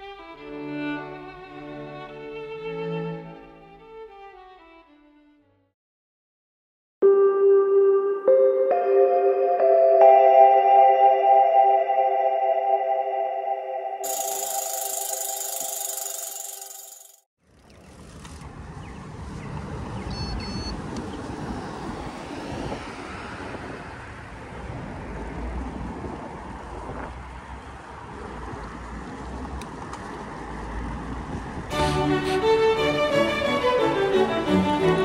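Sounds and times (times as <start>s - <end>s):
street traffic: 14.0s - 35.0s
wind rumbling on microphone: 20.7s - 31.8s
orchestral music: 31.7s - 35.0s.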